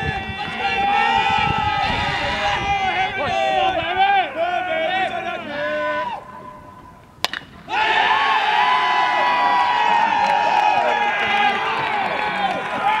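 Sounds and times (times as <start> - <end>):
crowd cheering and shouting: 0.0 - 6.8, 7.6 - 13.0
bat striking baseball: 7.2 - 7.8.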